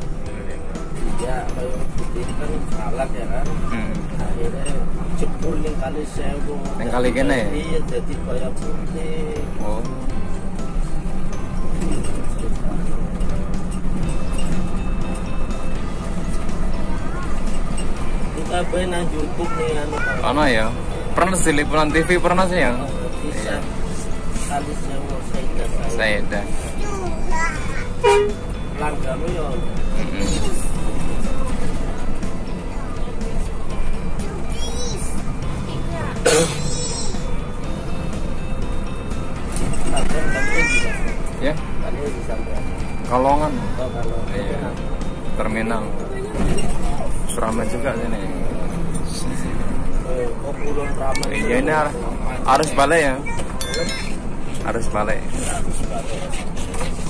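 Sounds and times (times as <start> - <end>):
bus engine drone: 0.0 - 57.0
music playing: 0.0 - 57.0
road noise: 0.0 - 57.0.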